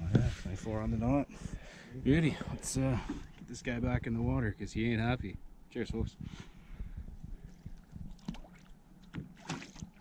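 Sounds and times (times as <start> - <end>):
knocks and shuffling in a boat: 0.0 - 10.0
water sloshing: 7.4 - 10.0
short splash: 9.4 - 10.0.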